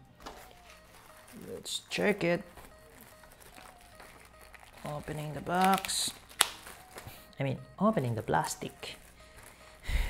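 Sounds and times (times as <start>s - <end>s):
faint background music: 0.0s - 10.0s
plastic bag crinkling: 0.2s - 10.0s
person speaking: 0.3s - 10.0s.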